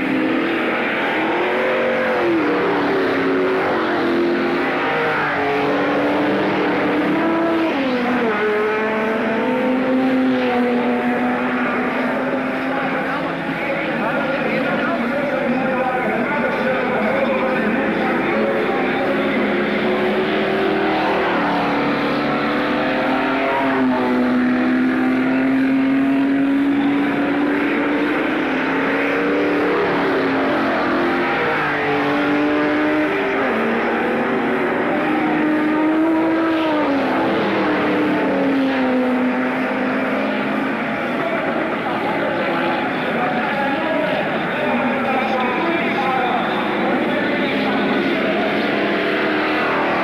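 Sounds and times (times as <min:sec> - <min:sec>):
race car engines passing: 0:00.0 - 0:50.0.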